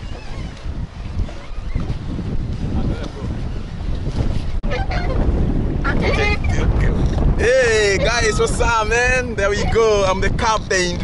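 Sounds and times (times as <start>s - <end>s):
wind buffeting microphone: 0.0s - 11.0s
man laughing and exclaiming: 7.4s - 10.1s.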